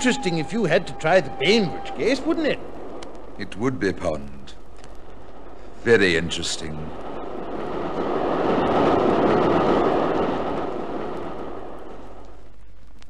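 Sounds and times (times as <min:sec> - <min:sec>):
train rushing and rumbling: 0:05.3 - 0:12.6.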